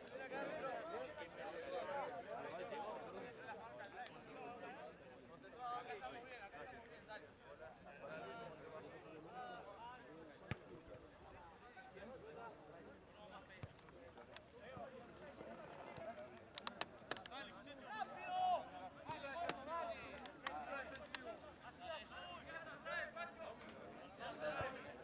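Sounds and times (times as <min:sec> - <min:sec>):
sharp clicks: 0:16.4 - 0:17.3.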